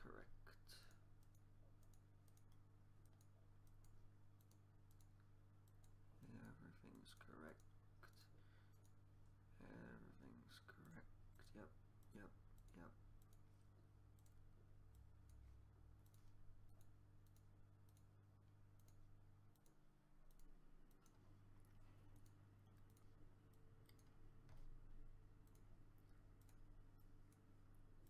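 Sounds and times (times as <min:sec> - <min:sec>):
low steady hum: 0:00.0 - 0:28.0
computer mouse clicks: 0:00.8 - 0:09.0, 0:10.8 - 0:28.0.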